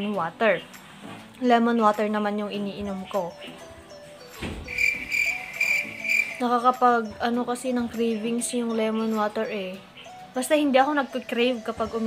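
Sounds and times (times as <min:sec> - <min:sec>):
insect trilling: 0:04.7 - 0:06.4.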